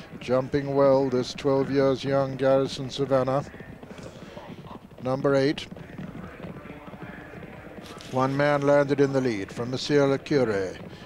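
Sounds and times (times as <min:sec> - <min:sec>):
horses galloping on turf: 0:00.0 - 0:11.0.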